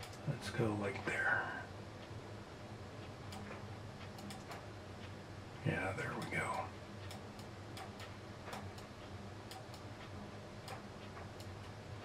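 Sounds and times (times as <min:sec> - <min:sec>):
computer mouse clicking: 0:00.0 - 0:00.2, 0:03.3 - 0:04.7, 0:06.1 - 0:08.9, 0:09.5 - 0:09.9, 0:10.6 - 0:11.8
faint electrical hum: 0:00.0 - 0:12.0.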